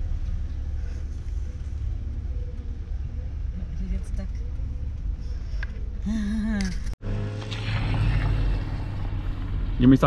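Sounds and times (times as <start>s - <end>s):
vehicle hum with road noise: 0.0s - 10.0s.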